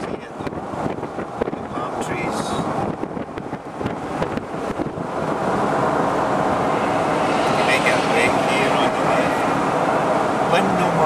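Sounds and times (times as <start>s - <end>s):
wind buffeting microphone: 0.0s - 10.6s
tyre and road noise: 0.0s - 11.0s.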